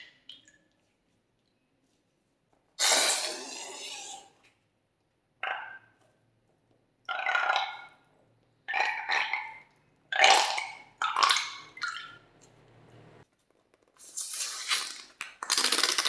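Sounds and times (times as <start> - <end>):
balloon neck sputtering: 14.5 - 16.0.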